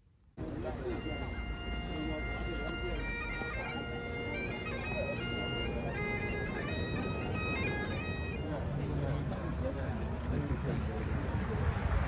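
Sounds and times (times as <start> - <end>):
bagpipes playing: 0.4 - 8.8.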